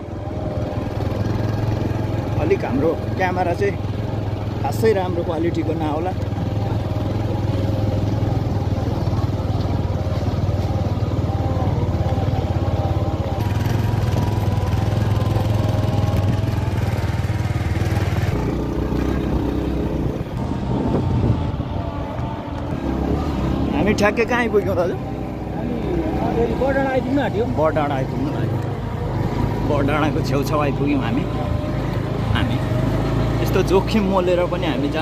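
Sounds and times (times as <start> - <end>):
motorcycle engine running: 0.0 - 35.0
people's voices: 0.0 - 35.0.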